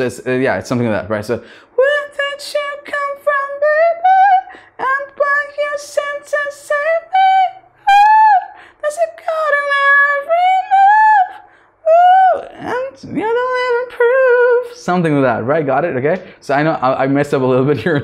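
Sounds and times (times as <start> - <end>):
man singing unaccompanied: 0.0 - 11.3, 11.9 - 15.6.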